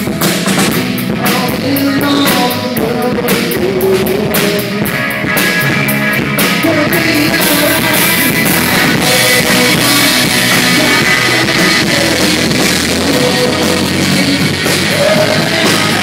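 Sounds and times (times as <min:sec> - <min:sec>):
drum kit beating: 0:00.0 - 0:16.0
sustained guitar notes: 0:03.9 - 0:16.0.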